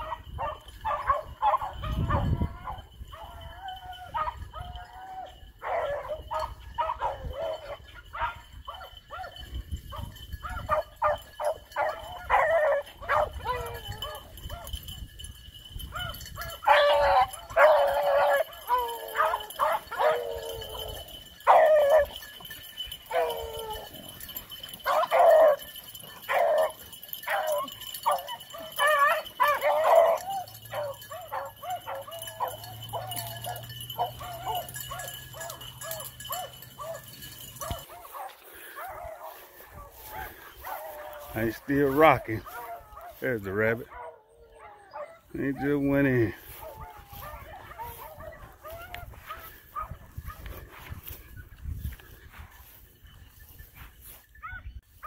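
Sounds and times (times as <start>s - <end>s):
beagles baying and barking: 0.0s - 55.0s.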